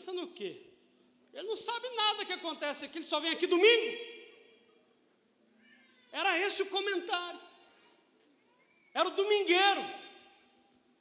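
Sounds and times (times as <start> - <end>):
man's amplified voice: 0.0 - 4.6, 6.1 - 7.6, 8.9 - 10.4.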